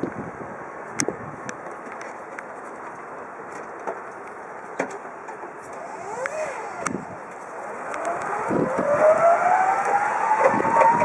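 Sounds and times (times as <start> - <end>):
scattered clicks: 5.6 - 8.8
electric forklift motor whining: 5.6 - 11.0.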